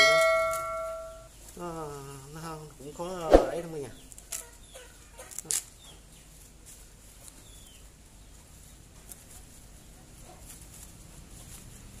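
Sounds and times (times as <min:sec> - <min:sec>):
dry coconut fibre crackling: 0:00.0 - 0:12.0.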